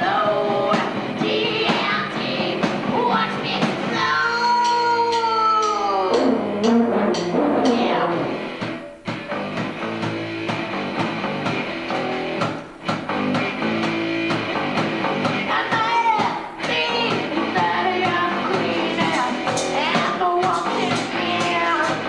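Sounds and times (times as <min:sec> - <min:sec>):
punk rock band playing: 0:00.0 - 0:22.0.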